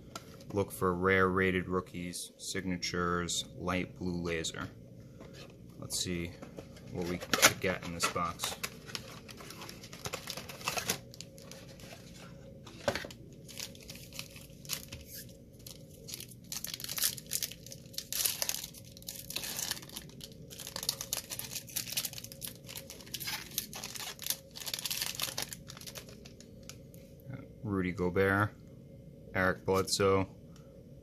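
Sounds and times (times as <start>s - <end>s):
plastic wrapper tearing and crinkling: 6.9s - 12.2s, 12.8s - 26.8s.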